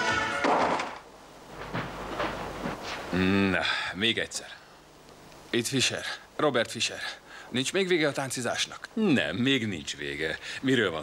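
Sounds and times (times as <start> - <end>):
door thudding shut: 0.1 - 1.0.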